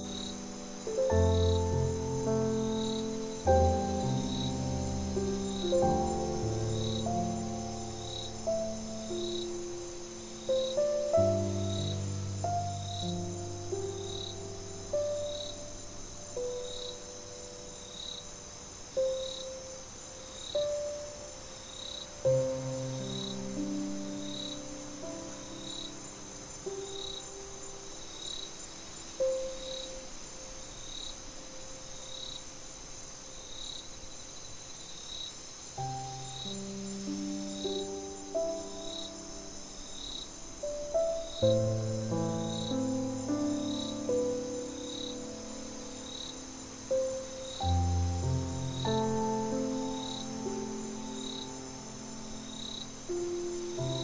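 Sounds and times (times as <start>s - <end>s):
soft solo piano: 0.0s - 32.2s, 35.7s - 54.0s
cricket chorus: 0.0s - 54.0s
single cricket chirp: 0.0s - 54.0s.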